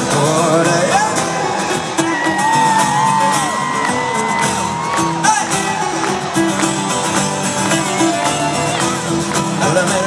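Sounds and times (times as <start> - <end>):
strummed guitar and beat: 0.0 - 10.0.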